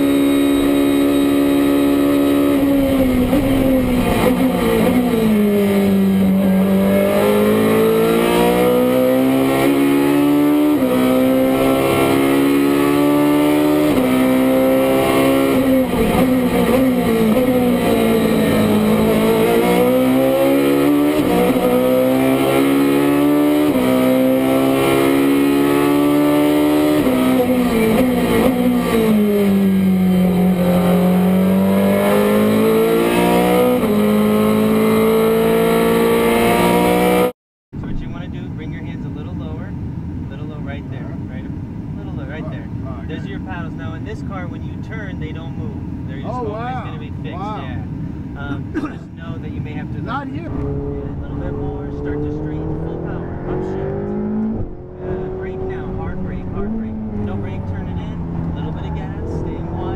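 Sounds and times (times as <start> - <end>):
race car engine at full throttle: 0.0 - 59.9.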